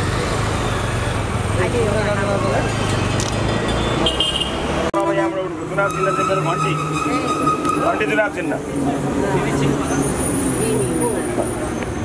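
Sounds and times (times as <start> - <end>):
vehicle engines rumbling: 0.0 - 12.0
car horn toot: 3.8 - 8.0
crowd voices: 5.7 - 12.0.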